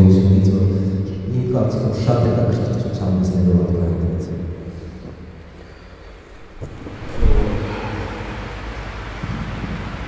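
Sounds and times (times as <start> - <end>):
microphone handling noise: 6.4 - 8.1.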